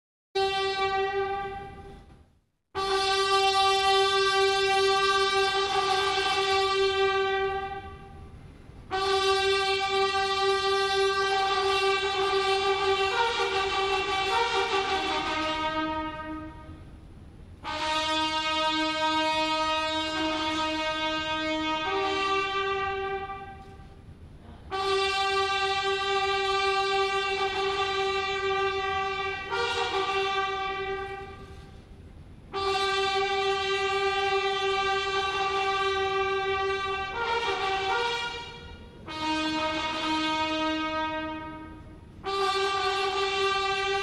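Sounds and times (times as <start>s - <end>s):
brass fanfare: 0.4s - 2.0s, 2.8s - 8.2s, 8.9s - 16.9s, 17.6s - 23.8s, 24.7s - 31.8s, 32.5s - 44.0s
long horn-like note: 0.4s - 2.0s, 2.8s - 8.3s, 8.9s - 16.9s, 17.6s - 31.8s, 32.5s - 44.0s.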